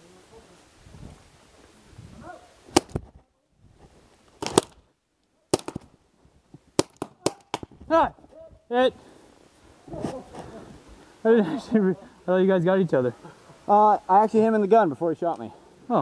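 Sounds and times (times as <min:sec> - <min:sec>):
paintball pistol pops: 0:02.7 - 0:03.1, 0:04.4 - 0:04.8, 0:05.5 - 0:05.9, 0:06.8 - 0:07.7.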